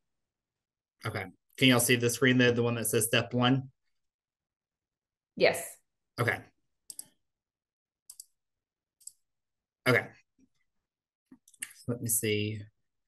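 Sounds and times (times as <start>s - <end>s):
computer mouse clicks: 6.8s - 7.2s, 8.1s - 8.4s, 9.0s - 9.3s.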